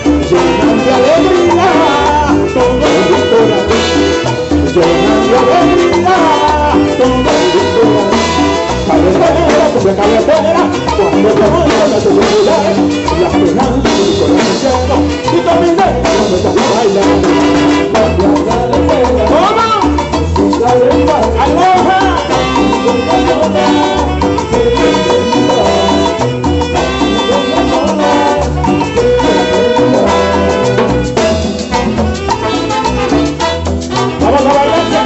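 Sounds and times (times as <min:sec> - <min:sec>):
timbales and percussion beat: 0:00.0 - 0:35.0
trumpet and saxophone section: 0:00.0 - 0:35.0.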